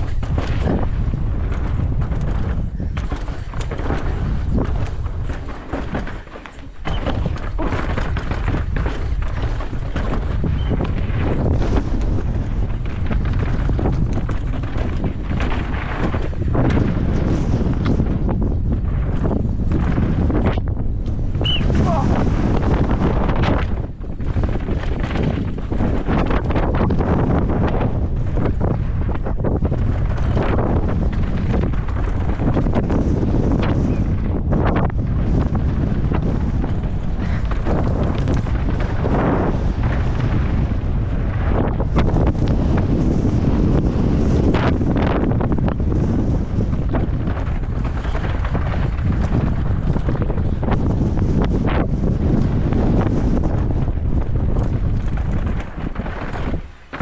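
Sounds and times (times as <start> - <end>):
bike knocks and rattles: 0.0 - 57.0
wind buffeting microphone: 0.0 - 57.0.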